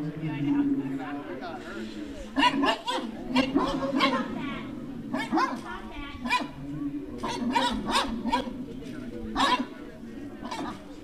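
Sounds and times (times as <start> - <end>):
people talking: 0.0 - 11.0
dog barking: 2.4 - 4.3, 5.1 - 6.6, 7.2 - 8.6, 9.3 - 9.8, 10.4 - 10.9.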